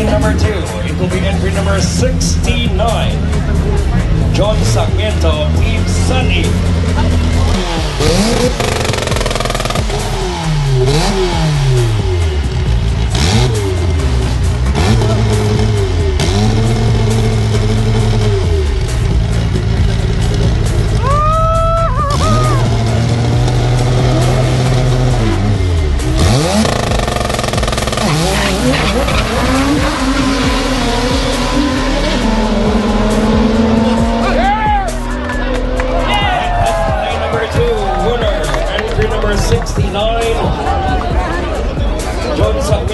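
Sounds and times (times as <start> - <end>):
drag car engine revving: 0.0 - 42.9.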